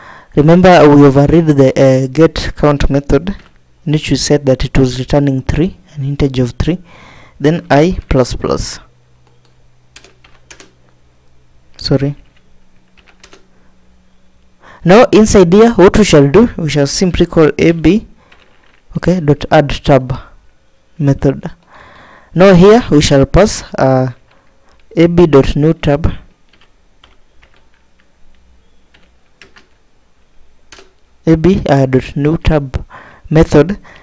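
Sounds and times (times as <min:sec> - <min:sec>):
keyboard keystrokes: 0:09.2 - 0:10.8, 0:12.2 - 0:13.5, 0:26.5 - 0:29.8, 0:30.7 - 0:31.0.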